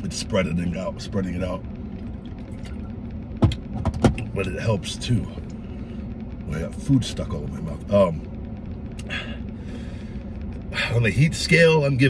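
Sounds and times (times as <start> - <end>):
man talking: 0.0 - 1.6, 4.2 - 5.5, 6.5 - 8.3, 10.7 - 12.0
low rumble in vehicle cabin: 0.0 - 12.0.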